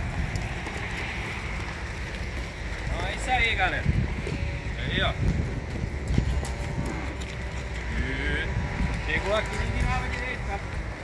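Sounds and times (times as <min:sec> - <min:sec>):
calves bawling: 0:00.0 - 0:11.0.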